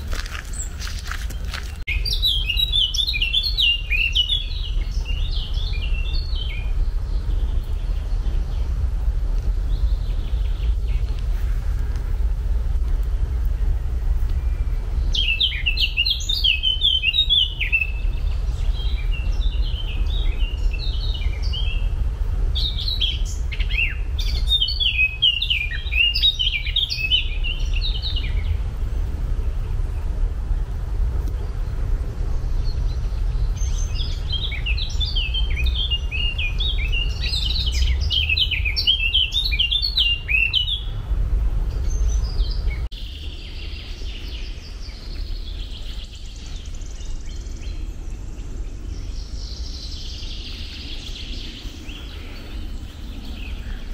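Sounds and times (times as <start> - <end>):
songbird singing: 0.0 - 53.9
steady low rumble: 0.0 - 53.9.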